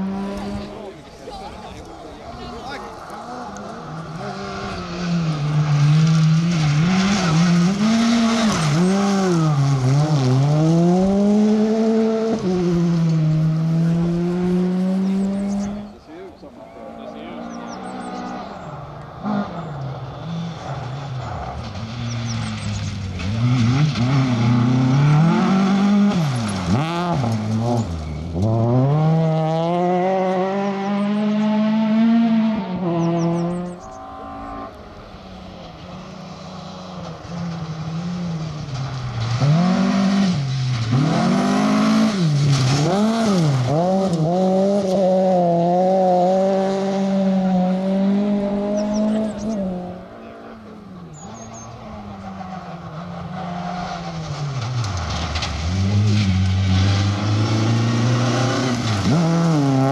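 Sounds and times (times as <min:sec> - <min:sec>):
rally car engines revving: 0:00.0 - 0:59.9.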